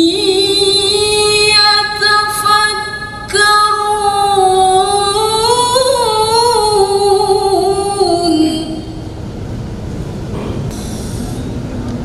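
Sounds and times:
woman reciting melodically: 0:00.0 - 0:09.1.

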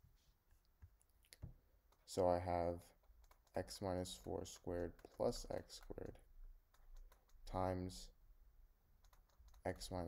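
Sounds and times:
stylus tapping on tablet: 0:03.0 - 0:03.6, 0:04.6 - 0:07.7, 0:09.0 - 0:09.9.

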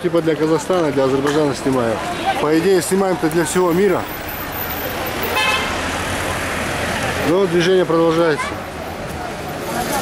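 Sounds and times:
passing cars: 0:00.0 - 0:10.0
vehicle horn toot: 0:05.3 - 0:05.8.

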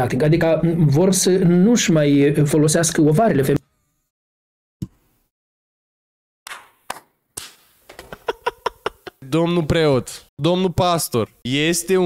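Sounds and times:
man stifled chuckling: 0:08.0 - 0:09.2.

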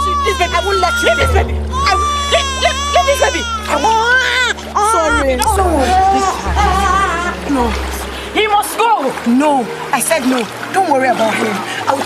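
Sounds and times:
child crying and wailing: 0:00.0 - 0:07.8
music underscore: 0:00.0 - 0:12.0.

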